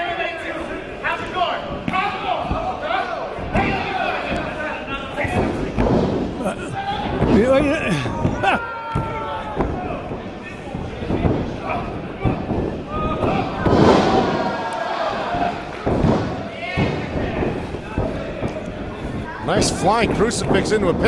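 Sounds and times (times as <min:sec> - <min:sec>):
bodies thudding on wrestling mat: 0:15.2 - 0:18.6.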